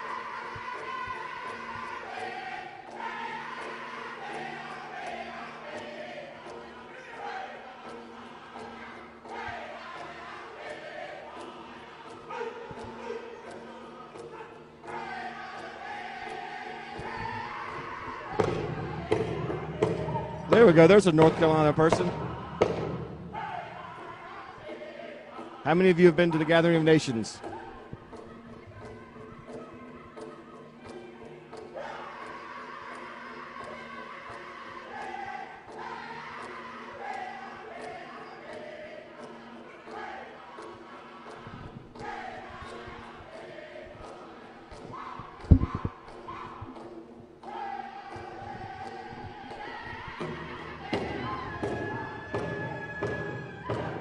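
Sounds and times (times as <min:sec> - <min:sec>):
group singing in chorus: 0:00.0 - 0:54.0
steady drumbeat: 0:17.0 - 0:23.9, 0:45.5 - 0:46.0
heavy thumps: 0:45.4 - 0:46.0.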